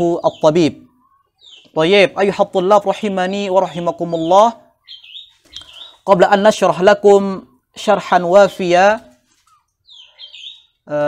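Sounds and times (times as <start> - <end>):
faint bird chirps: 0.0 - 11.0
person speaking: 1.6 - 4.7, 5.6 - 9.3.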